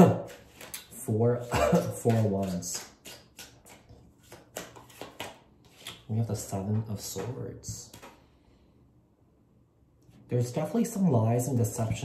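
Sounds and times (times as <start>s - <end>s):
cards sliding and turning: 0.2s - 0.9s, 1.9s - 6.1s, 7.9s - 8.2s.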